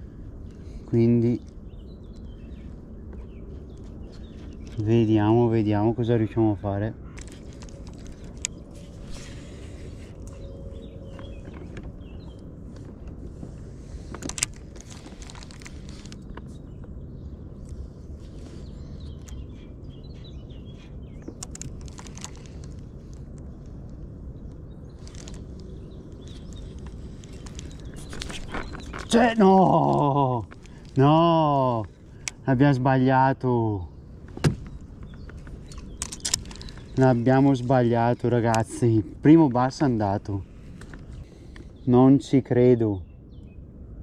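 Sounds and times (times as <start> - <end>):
wind rumble on microphone: 0.0 - 32.8.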